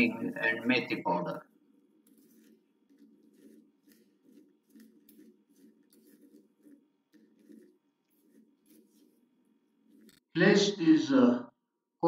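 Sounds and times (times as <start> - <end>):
spoon scraping steel bowl: 1.8 - 10.3.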